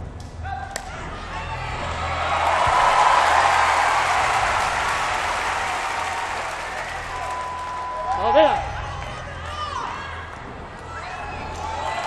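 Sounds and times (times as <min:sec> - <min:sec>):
crowd applauding: 0:02.0 - 0:09.5.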